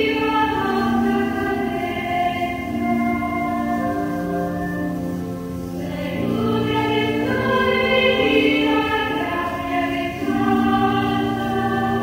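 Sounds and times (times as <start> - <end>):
women's choir singing a hymn: 0.0 - 12.0.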